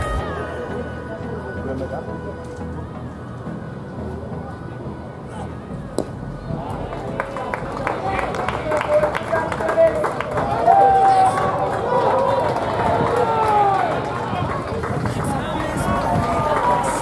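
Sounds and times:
players shouting: 0:05.3 - 0:17.0
sharp claps and clicks: 0:06.9 - 0:17.0.

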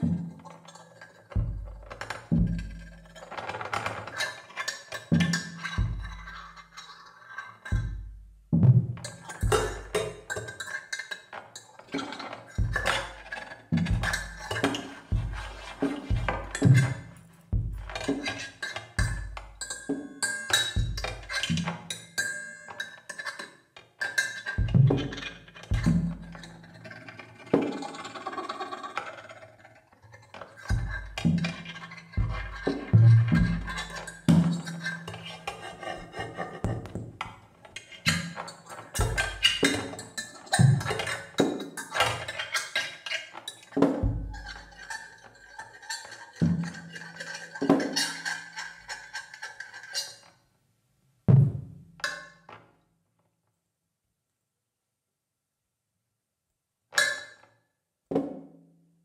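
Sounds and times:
drum strokes with mallets: 0:00.0 - 0:04.3, 0:04.9 - 0:06.8, 0:07.6 - 0:10.8, 0:11.9 - 0:22.4, 0:24.5 - 0:26.7, 0:30.6 - 0:42.4, 0:43.7 - 0:49.0, 0:51.3 - 0:52.2.

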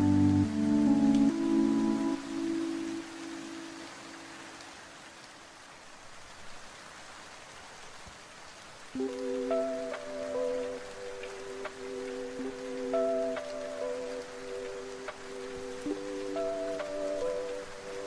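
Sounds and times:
chill lofi music: 0:00.0 - 0:04.0, 0:09.0 - 0:18.0
gentle rain: 0:00.0 - 0:18.0.

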